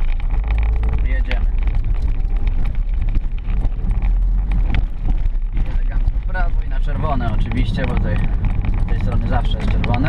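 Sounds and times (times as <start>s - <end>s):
camera rattling in housing: 0.0s - 6.3s, 7.3s - 10.0s
car engine and road rumble: 0.0s - 10.0s.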